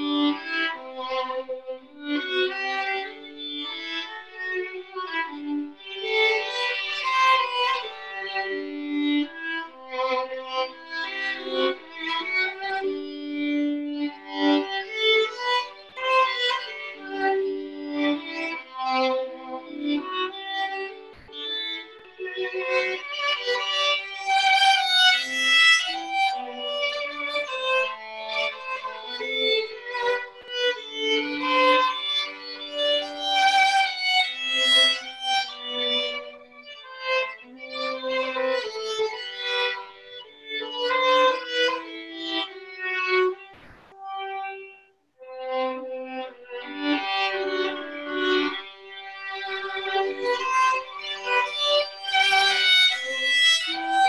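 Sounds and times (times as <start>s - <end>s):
two violins playing a waltz: 0.0s - 54.0s.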